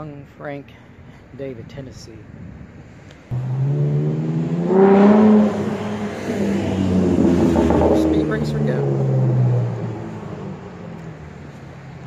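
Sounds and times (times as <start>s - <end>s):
sports car engine accelerating: 3.3s - 12.0s.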